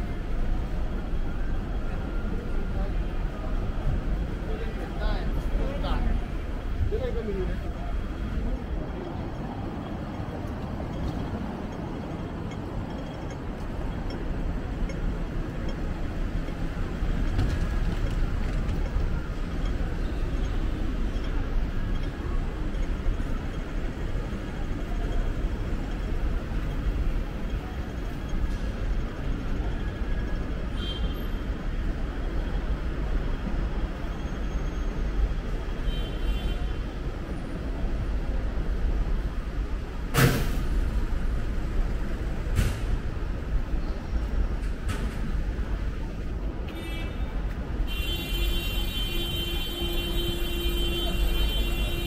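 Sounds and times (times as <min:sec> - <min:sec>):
street traffic rumble: 0:00.0 - 0:52.0.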